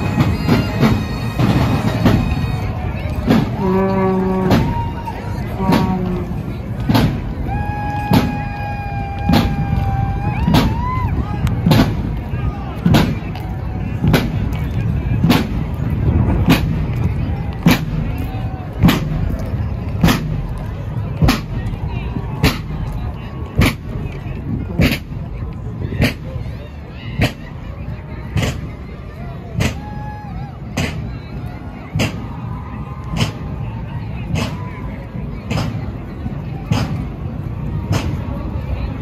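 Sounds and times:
street rumble: 0.0 - 39.0.

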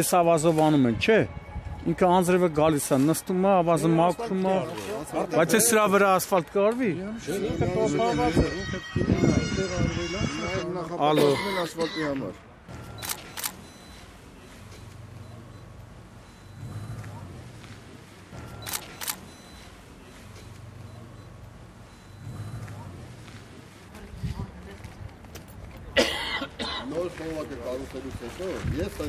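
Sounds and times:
person coughing: 26.0 - 27.0.

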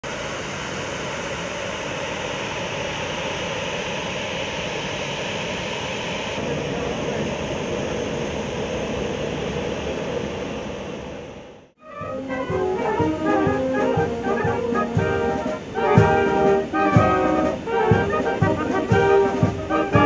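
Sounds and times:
jet engines running: 0.0 - 20.0.

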